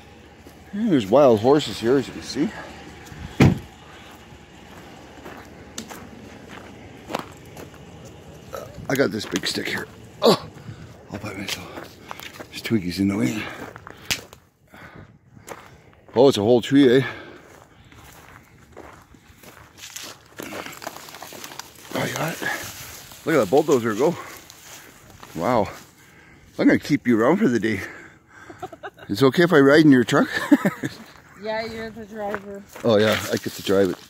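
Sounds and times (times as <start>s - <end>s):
conifer branches rustling: 0.0s - 14.3s, 17.4s - 26.6s, 31.0s - 34.0s
footsteps on gravel: 0.0s - 26.1s, 30.3s - 34.0s.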